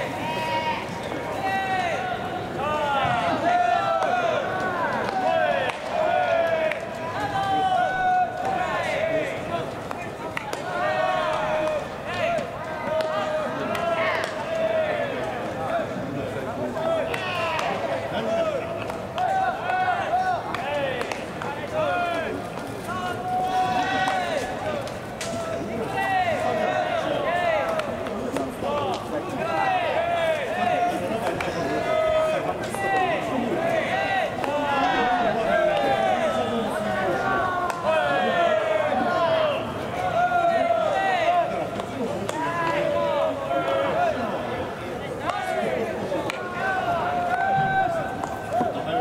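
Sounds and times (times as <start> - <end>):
players shouting long calls: 0.0 - 15.9, 16.7 - 49.0.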